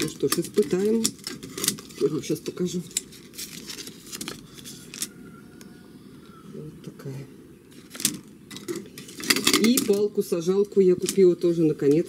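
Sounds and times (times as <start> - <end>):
plastic packaging rustling: 0.0 - 5.2, 7.7 - 10.2.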